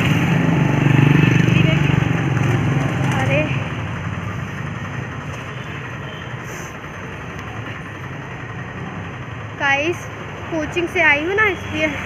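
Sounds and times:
street din: 0.0s - 12.0s
vehicle engine hum: 0.0s - 12.0s.

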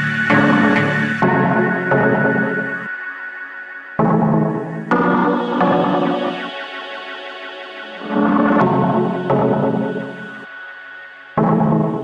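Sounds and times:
electronic dance music: 0.0s - 2.9s, 4.0s - 10.5s
drum hits: 0.3s - 2.9s, 4.0s - 6.3s, 11.4s - 12.0s.

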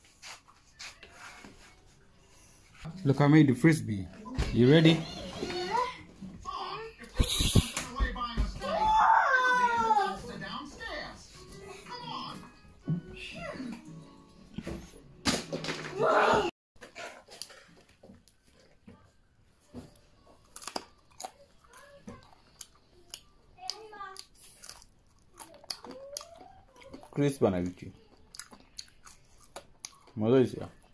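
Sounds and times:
child chattering and calling out: 25.4s - 27.1s.

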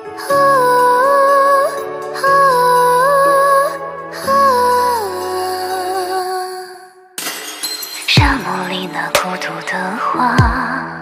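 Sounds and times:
glass shattering crash: 7.2s - 8.6s.

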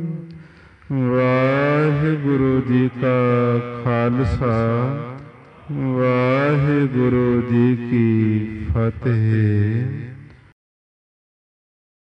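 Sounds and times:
man chanting: 0.0s - 10.5s.

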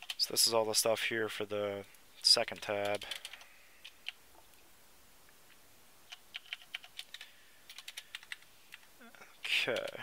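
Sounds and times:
typing on computer keyboard: 0.0s - 0.2s, 2.5s - 4.2s, 6.1s - 8.9s, 9.7s - 10.0s.

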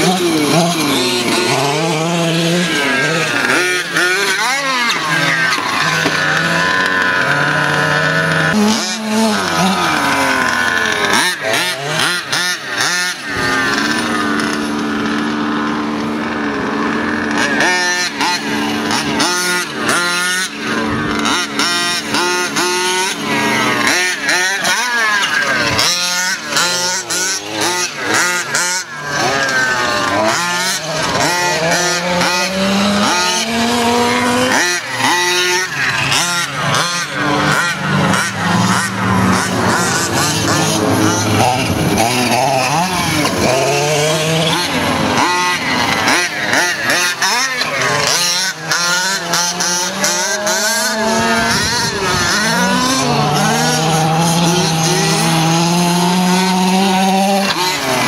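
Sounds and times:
two-stroke engine revving: 0.0s - 58.0s.

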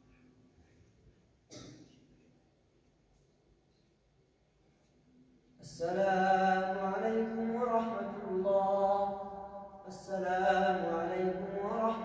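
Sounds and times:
man chanting over microphone: 5.6s - 12.0s.

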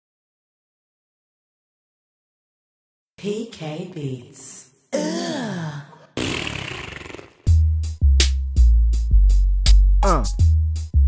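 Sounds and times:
man groaning: 5.0s - 6.2s, 10.0s - 10.4s.

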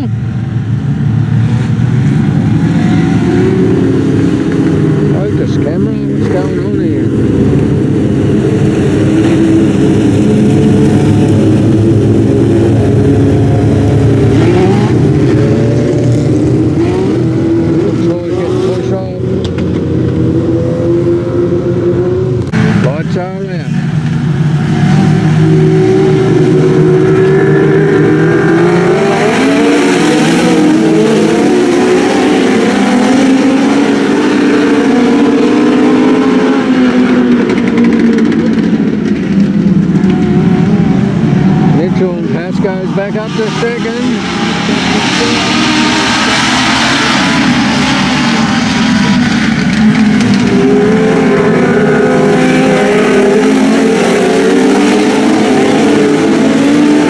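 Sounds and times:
race car engines: 0.0s - 57.0s.

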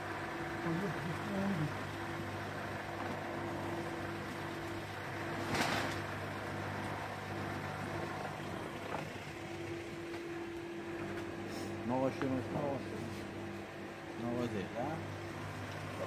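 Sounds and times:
mechanical hum: 0.0s - 16.0s.

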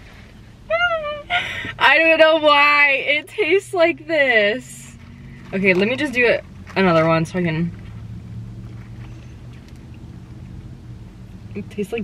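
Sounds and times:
car cabin engine hum: 0.0s - 12.0s.

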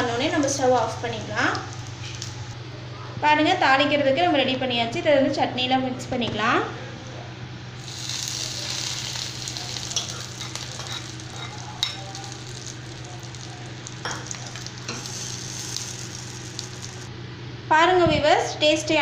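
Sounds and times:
hot oil sizzling: 0.0s - 2.6s, 7.8s - 17.1s.

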